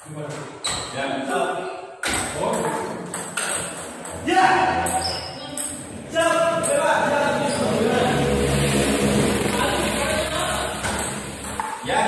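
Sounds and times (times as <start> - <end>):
people talking: 2.3 - 3.0, 4.2 - 11.1.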